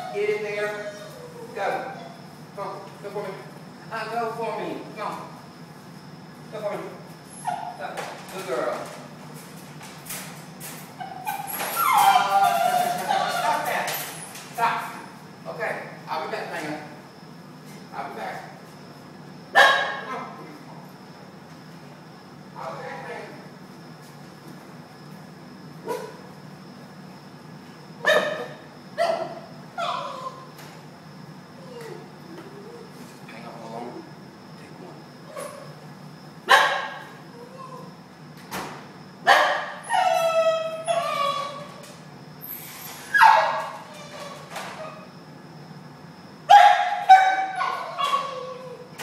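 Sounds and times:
dog crying and howling: 0:00.0 - 0:02.3, 0:11.0 - 0:13.8, 0:28.0 - 0:30.6, 0:37.2 - 0:38.0, 0:39.4 - 0:41.8, 0:43.1 - 0:45.1, 0:46.5 - 0:49.0
dog barking: 0:19.6 - 0:20.1, 0:28.0 - 0:29.4, 0:36.5 - 0:37.0, 0:39.3 - 0:39.8, 0:46.5 - 0:48.3.

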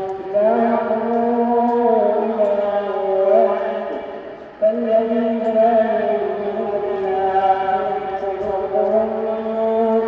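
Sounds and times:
man reciting over loudspeaker: 0:00.0 - 0:10.0.

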